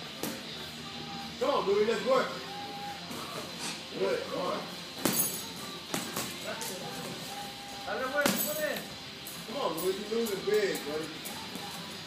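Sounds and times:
background music: 0.0s - 12.0s
boxing gloves punching: 5.0s - 6.4s.

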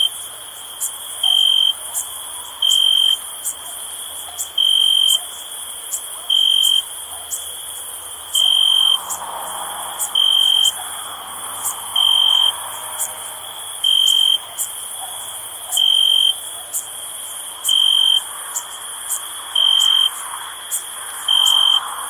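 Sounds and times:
cricket trilling: 0.0s - 22.0s
high-pitched insect hiss: 0.0s - 22.0s
rapid insect chirps: 0.0s - 22.0s.

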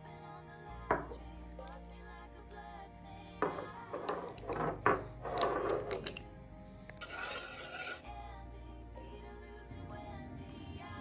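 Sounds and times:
soft background music: 0.0s - 11.0s
scraping and rubbing: 3.4s - 6.3s, 7.0s - 8.1s.

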